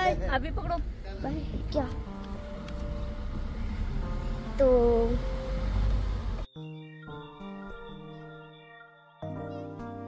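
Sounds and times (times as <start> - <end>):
car driving rumble: 0.0 - 6.5
faint background music: 0.0 - 8.6.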